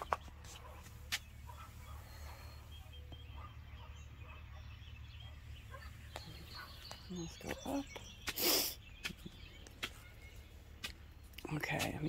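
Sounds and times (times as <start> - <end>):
faint bird calls: 0.0 - 12.0.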